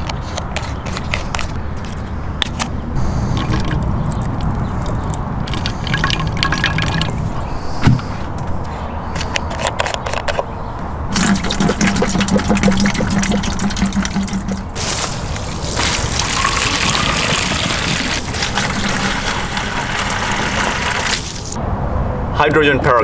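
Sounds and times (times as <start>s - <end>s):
liquid pouring: 5.4s - 7.3s, 11.1s - 21.6s
hose water filling plastic jug: 5.5s - 7.2s, 11.1s - 21.6s.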